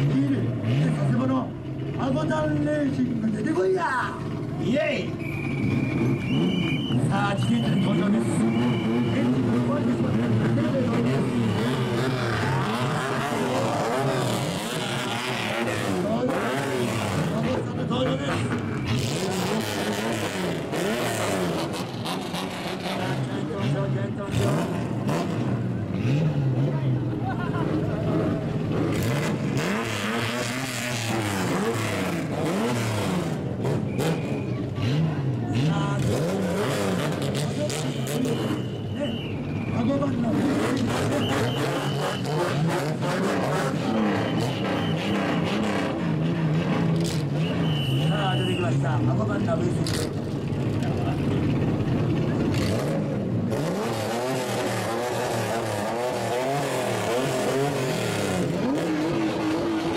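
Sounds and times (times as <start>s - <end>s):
car engines revving: 0.0s - 59.9s
crowd voices: 0.0s - 59.9s.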